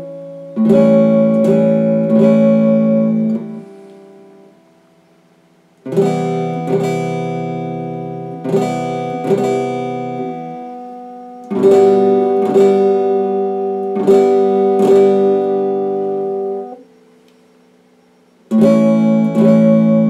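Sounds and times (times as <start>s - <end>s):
electric guitar chords strummed: 0.0s - 20.0s.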